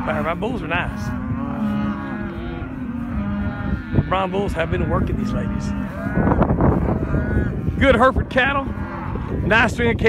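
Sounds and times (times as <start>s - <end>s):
cow mooing: 0.0s - 9.8s.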